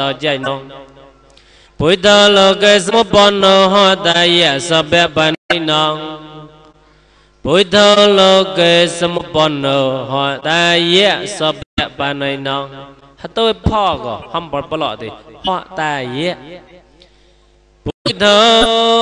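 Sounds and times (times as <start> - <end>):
man chanting: 0.0 - 1.2, 1.8 - 6.6, 7.4 - 16.6, 18.0 - 19.0.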